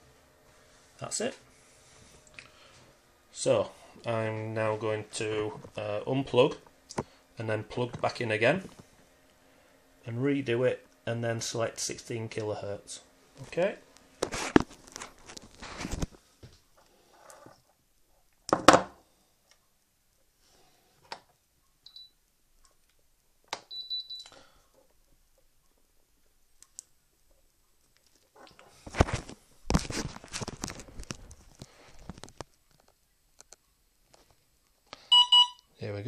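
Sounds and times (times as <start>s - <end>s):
short high-pitched beeps: 21.8s - 22.1s, 35.1s - 35.6s.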